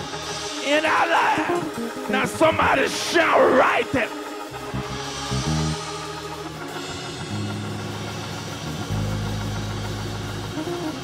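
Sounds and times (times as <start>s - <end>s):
church band music: 0.0s - 11.0s
long low bass notes: 4.5s - 5.9s.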